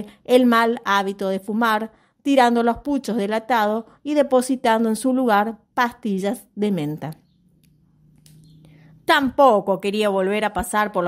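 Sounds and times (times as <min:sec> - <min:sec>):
woman reading aloud: 0:00.0 - 0:07.2, 0:09.0 - 0:11.0
soft breath: 0:08.5 - 0:09.0.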